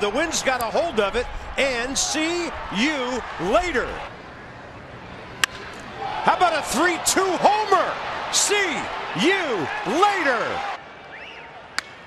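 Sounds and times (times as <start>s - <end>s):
stadium crowd murmuring: 0.0s - 12.0s
baseball bat crack: 5.3s - 6.0s, 11.7s - 12.0s.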